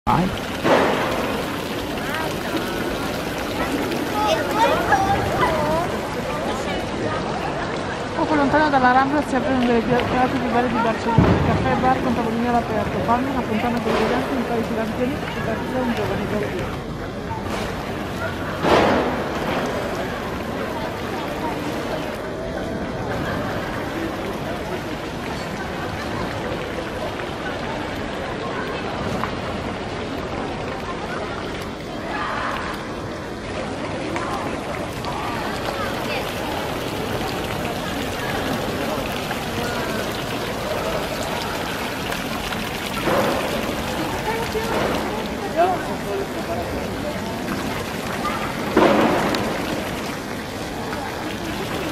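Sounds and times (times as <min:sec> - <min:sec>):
fountain water splashing: 0:00.1 - 0:51.9
indistinct voices of passers-by: 0:00.1 - 0:51.9
people chattering: 0:00.1 - 0:51.9.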